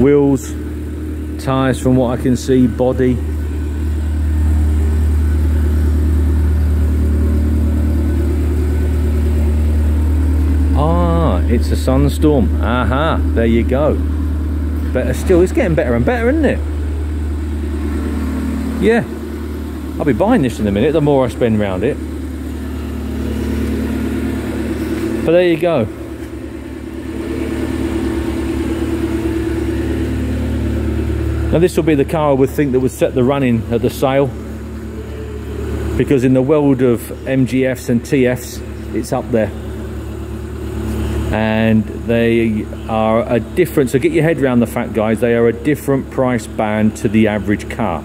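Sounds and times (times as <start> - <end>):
car engine idling: 0.0 - 48.0.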